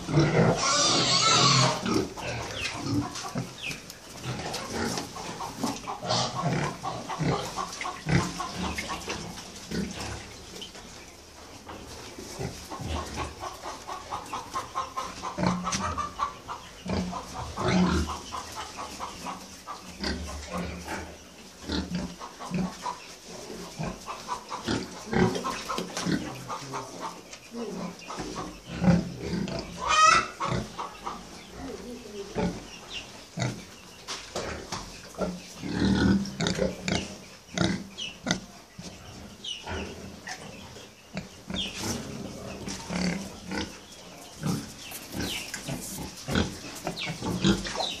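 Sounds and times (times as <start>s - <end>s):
pigs grunting: 0.0s - 10.5s, 12.3s - 32.7s, 34.4s - 38.5s, 39.6s - 48.0s.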